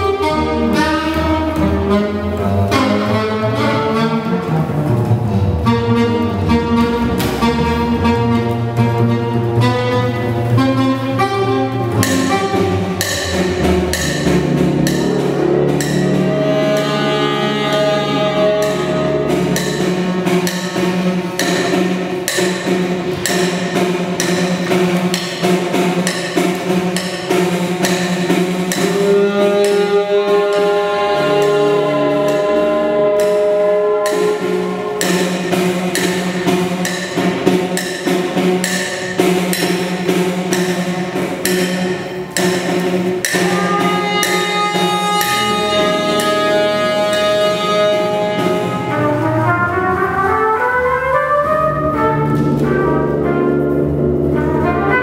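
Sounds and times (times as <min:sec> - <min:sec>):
brass ensemble with drums: 0:00.0 - 0:55.0.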